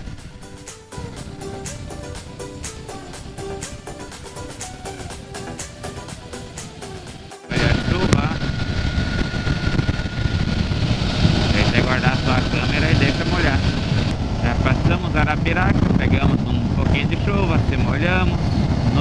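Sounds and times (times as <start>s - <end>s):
background music: 0.0s - 8.6s
motorcycle wind and engine rush: 0.0s - 19.0s
steady whine: 0.0s - 19.0s.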